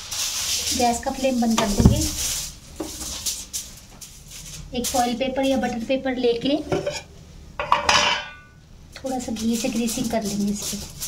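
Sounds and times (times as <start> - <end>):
aluminium foil crinkling: 0.0 - 5.7, 9.0 - 11.0.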